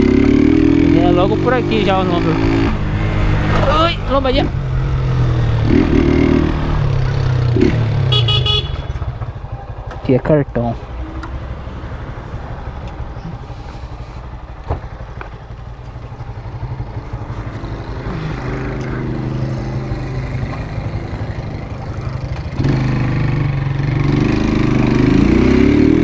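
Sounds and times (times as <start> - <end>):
motorcycle engine: 0.0 - 26.0.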